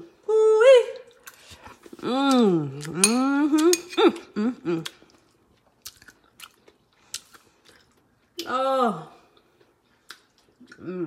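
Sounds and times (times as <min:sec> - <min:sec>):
faint chewing: 0:01.0 - 0:08.5, 0:09.2 - 0:11.0.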